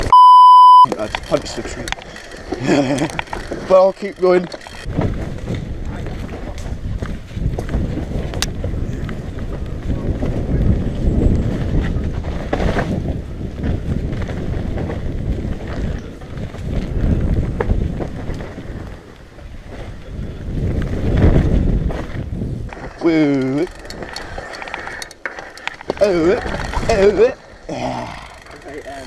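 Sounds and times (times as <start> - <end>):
tyres rumbling over dirt: 0.7 - 29.0
bike clicks and knocks: 0.9 - 10.7, 11.3 - 20.0, 20.6 - 29.0
wind buffeting microphone: 1.0 - 29.0.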